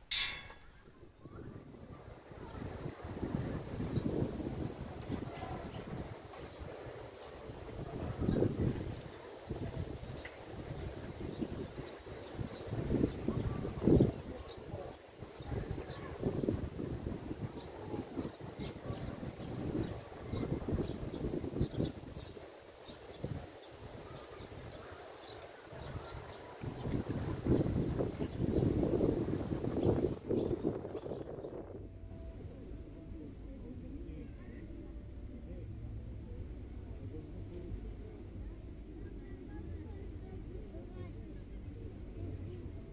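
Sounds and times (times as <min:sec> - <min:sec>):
wind on microphone: 0:00.0 - 0:42.9.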